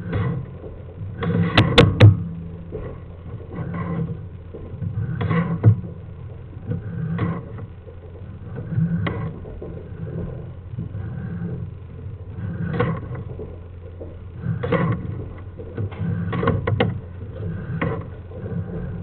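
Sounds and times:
camera scraping in drain pipe: 0.0s - 2.0s, 2.7s - 6.0s, 6.6s - 7.7s, 12.3s - 19.0s
steady low hum: 0.0s - 19.0s
sharp knocks: 1.5s - 2.4s.

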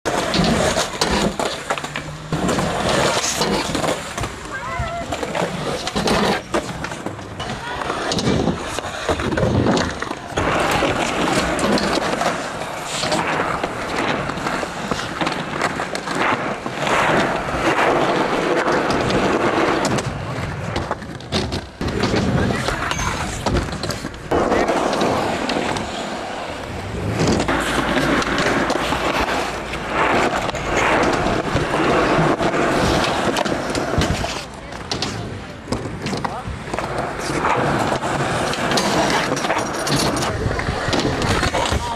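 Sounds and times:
skateboard wheels rolling on concrete: 0.0s - 41.9s
skateboard clacks: 0.1s - 41.9s.

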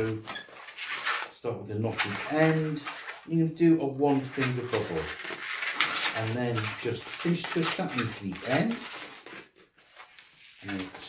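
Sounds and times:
speech: 0.0s - 0.3s, 1.3s - 5.2s, 6.1s - 8.9s, 10.6s - 11.0s
balloon rubbing in hands: 0.0s - 11.0s.

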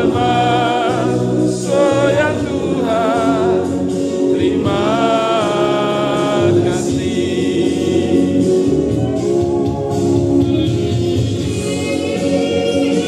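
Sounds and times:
group singing in chorus: 0.0s - 10.2s
accompanying music: 0.0s - 13.0s.

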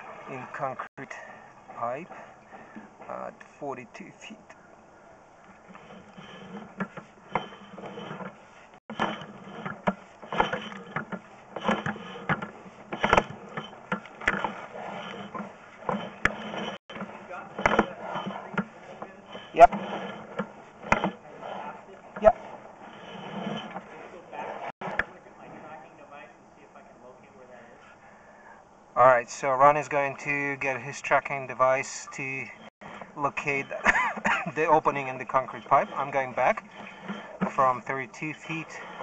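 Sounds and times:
cable scraping onto reel: 5.4s - 25.7s, 29.8s - 39.0s.

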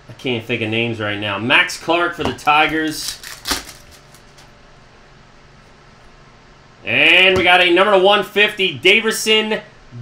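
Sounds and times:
cards being handled: 2.3s - 4.5s
foil wrapper crinkling: 2.4s - 4.5s.

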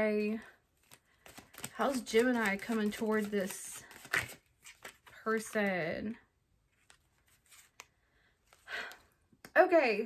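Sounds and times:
cards rustling: 0.7s - 5.8s, 6.6s - 9.0s
cards clicking: 0.8s - 5.6s.

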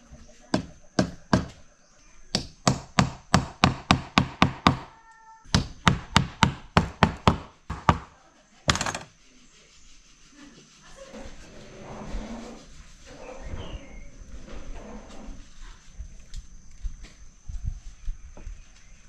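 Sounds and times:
wooden block knocking wood: 0.5s - 1.6s, 2.4s - 4.9s, 5.5s - 8.1s, 8.7s - 9.1s.

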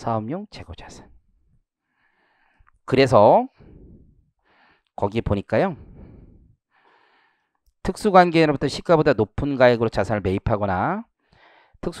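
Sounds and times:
man breathing in near microphone: 1.8s - 2.8s, 3.6s - 5.0s, 5.8s - 7.6s, 11.2s - 11.8s.

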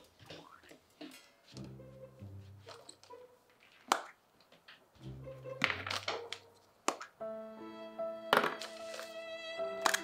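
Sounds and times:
background music with held chords: 1.6s - 2.6s, 5.0s - 5.9s, 7.2s - 10.0s.

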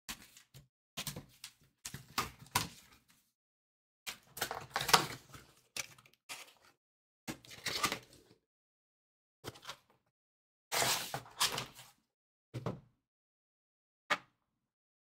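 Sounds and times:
cardboard rustling and scraping: 10.7s - 11.9s.

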